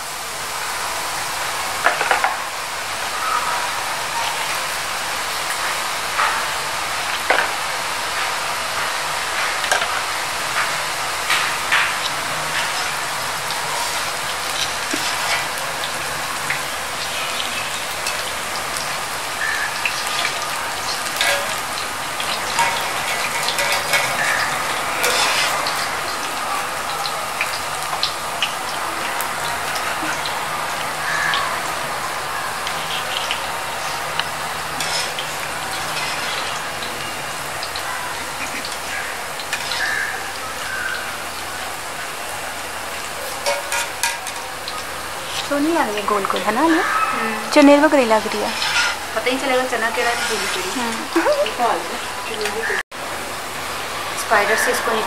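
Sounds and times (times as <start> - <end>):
batter sizzling in hot oil: 0.0 - 55.0
metal skimmer stirring oil: 19.9 - 25.9, 48.2 - 51.1.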